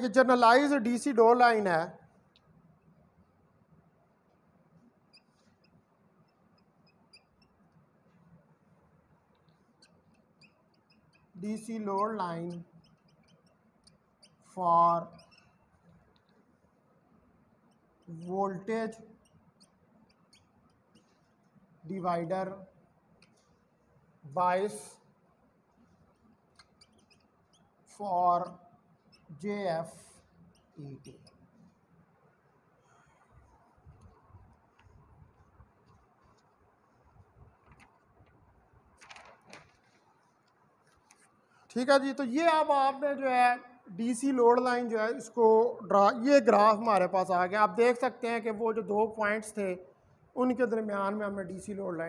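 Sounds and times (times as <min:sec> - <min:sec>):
marker squeaking on whiteboard: 0:02.1 - 0:45.4.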